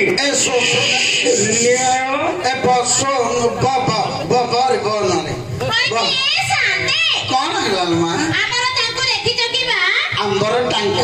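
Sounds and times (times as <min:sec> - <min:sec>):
children shouting and chattering: 0:05.6 - 0:07.5.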